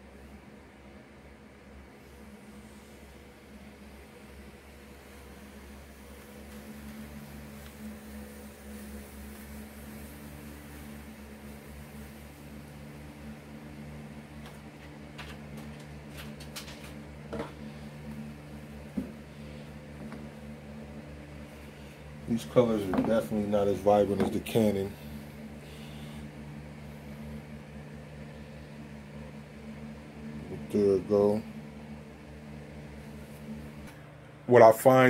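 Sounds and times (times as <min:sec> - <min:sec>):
low electrical hum: 0:00.0 - 0:35.0.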